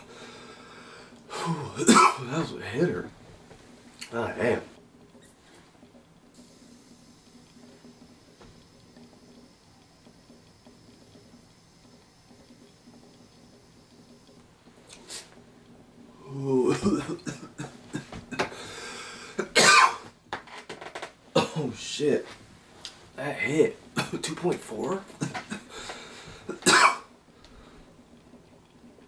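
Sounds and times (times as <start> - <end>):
man coughing hard: 1.4 - 2.3, 16.6 - 18.5, 19.4 - 20.1, 21.4 - 21.8, 25.2 - 25.6, 26.5 - 27.1
faint hiss of air: 3.7 - 20.2.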